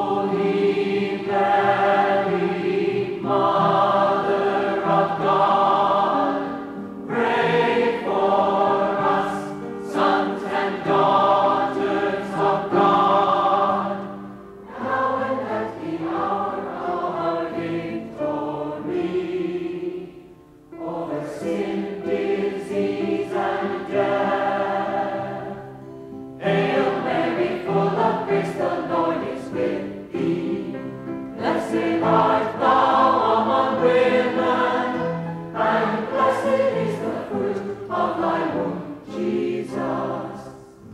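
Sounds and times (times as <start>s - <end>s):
choir singing a hymn: 0.0s - 40.9s.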